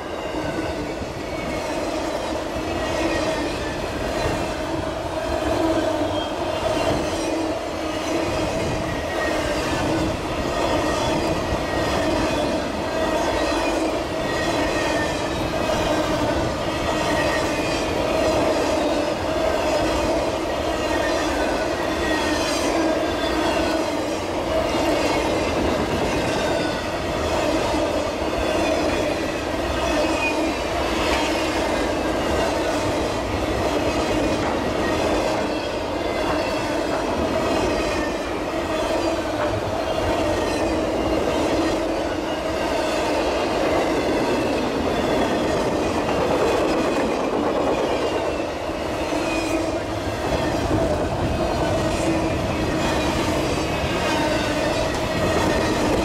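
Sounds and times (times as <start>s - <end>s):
train wheels on rails: 0.0s - 56.0s.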